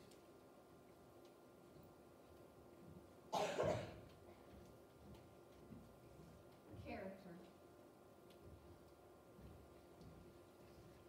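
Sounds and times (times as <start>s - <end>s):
loud cough: 3.3s - 4.0s.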